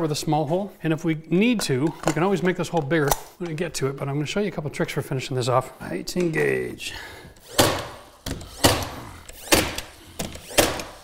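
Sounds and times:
nail gun shots: 7.4s - 11.0s.

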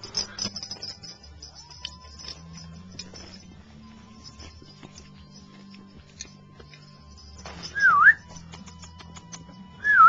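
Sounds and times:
person whistling: 7.7s - 8.3s, 9.8s - 10.0s.

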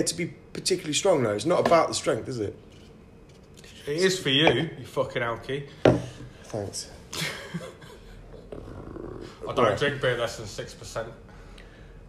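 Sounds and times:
people laughing breathily: 7.1s - 8.5s.

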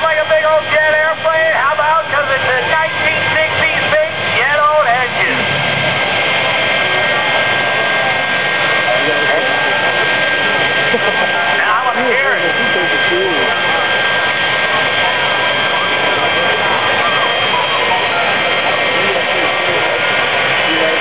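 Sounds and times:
crowd voices: 0.0s - 21.0s
jet engine whine: 0.0s - 21.0s.

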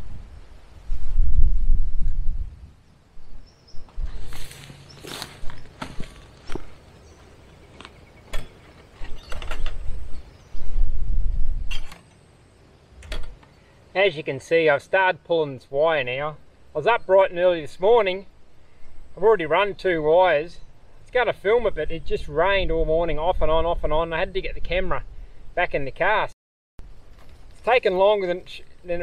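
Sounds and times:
wind noise on microphone: 0.0s - 6.6s, 8.3s - 12.0s, 21.5s - 25.6s.

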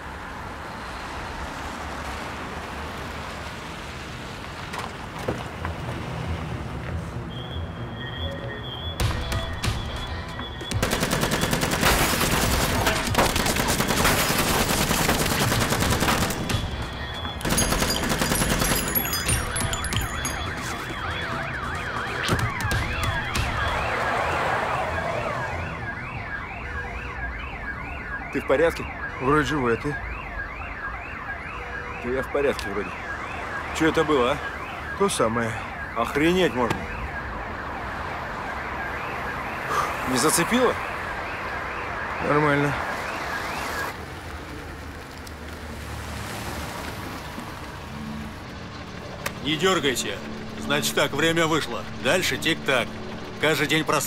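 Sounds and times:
car alarm sweeping: 7.3s - 10.8s, 16.4s - 44.0s
rapid automatic gunfire: 10.8s - 16.6s, 17.4s - 18.8s.

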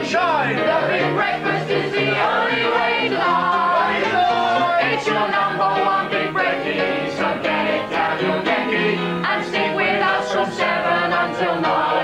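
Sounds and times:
group of voices singing: 0.0s - 12.0s
upright piano: 0.0s - 12.0s.

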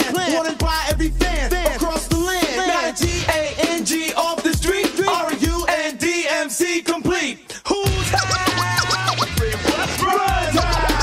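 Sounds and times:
turntable scratching: 0.0s - 6.2s, 7.7s - 11.0s
hip hop beat: 0.0s - 11.0s.

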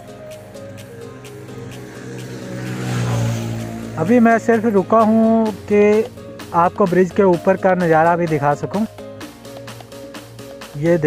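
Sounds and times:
vehicle passing by: 0.0s - 7.3s.

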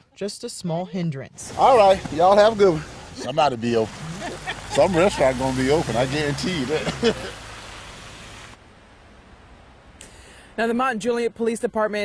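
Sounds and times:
faint background noise: 0.0s - 12.0s
tyres hissing on wet road: 1.4s - 8.6s.

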